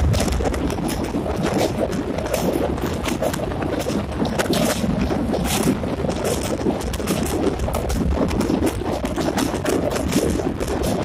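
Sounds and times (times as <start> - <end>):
rushes of air: 0.0 - 11.0
train rumbling on a bridge: 0.0 - 11.0
wind buffeting microphone: 0.0 - 11.0.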